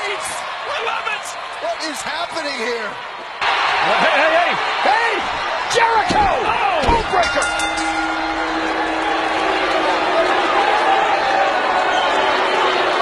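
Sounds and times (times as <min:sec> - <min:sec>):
steady held tone: 0:07.2 - 0:10.8.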